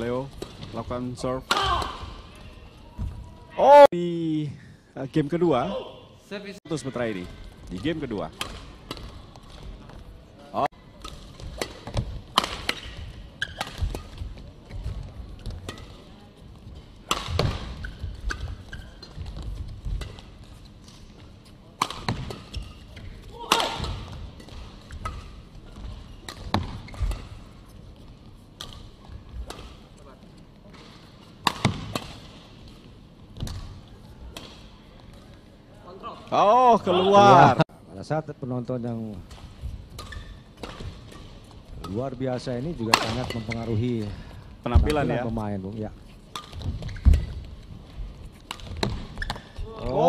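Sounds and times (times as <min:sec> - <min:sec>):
racket hitting shuttlecock: 0:11.0 - 0:14.8, 0:17.0 - 0:20.3, 0:31.4 - 0:32.3.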